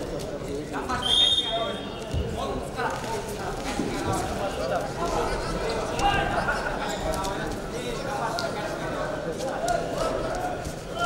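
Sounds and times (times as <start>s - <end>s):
shrill whistle blast: 1.0s - 1.8s.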